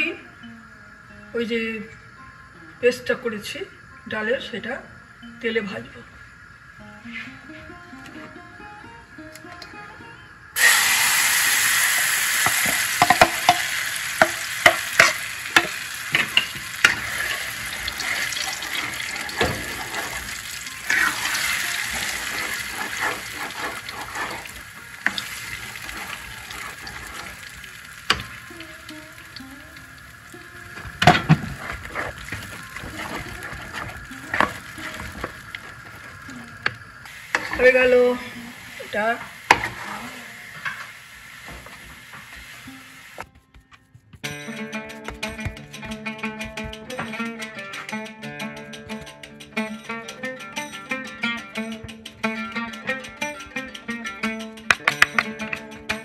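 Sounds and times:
paste sizzling in hot oil: 10.6s - 43.3s
spatula knocking against pan: 13.0s - 17.0s
wooden spatula scraping pan: 14.7s - 28.4s, 30.8s - 36.6s, 37.3s - 40.9s.

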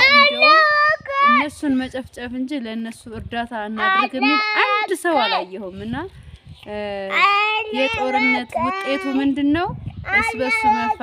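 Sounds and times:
young child singing: 3.8s - 5.5s, 7.1s - 9.2s, 10.0s - 11.0s.

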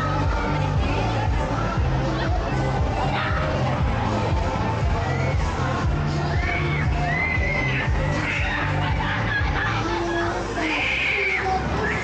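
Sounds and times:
loud fairground music: 0.0s - 12.0s.

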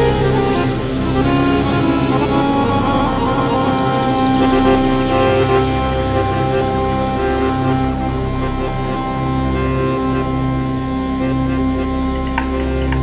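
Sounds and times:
accordion sustained chords: 0.0s - 13.0s
synth bass: 0.0s - 13.0s.

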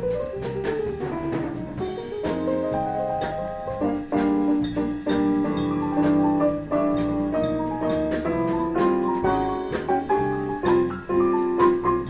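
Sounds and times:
jazz ensemble playing: 0.0s - 12.0s.

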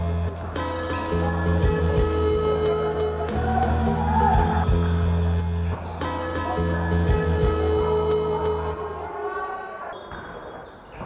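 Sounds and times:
music beat: 0.0s - 9.1s
faint basketball game in gym: 0.0s - 11.0s.

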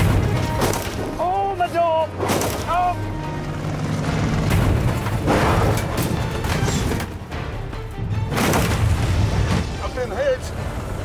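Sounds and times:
vehicles crashing: 0.0s - 7.3s
music soundtrack: 0.0s - 11.0s.

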